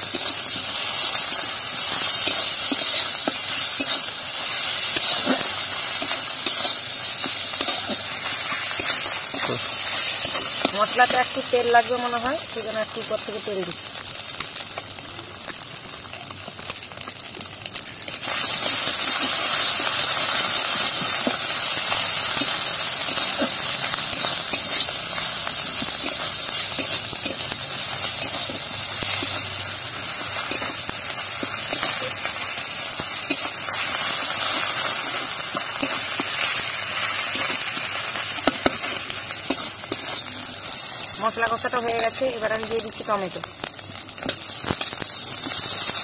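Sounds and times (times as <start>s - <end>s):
onions sizzling in hot oil: 0.0s - 46.0s.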